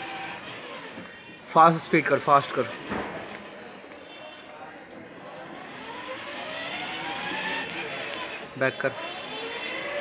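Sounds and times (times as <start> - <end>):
electric toy motors whining: 0.0 - 1.4, 5.3 - 10.0.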